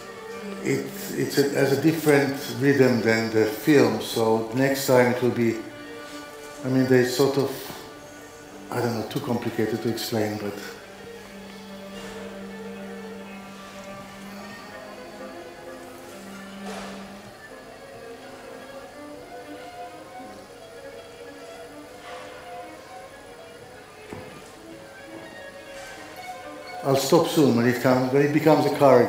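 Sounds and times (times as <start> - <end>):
solo viola playing: 0.0 - 29.0.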